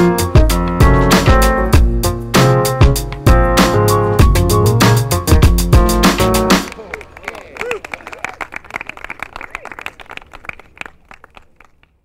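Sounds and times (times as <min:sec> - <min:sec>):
applause: 0:06.5 - 0:12.0.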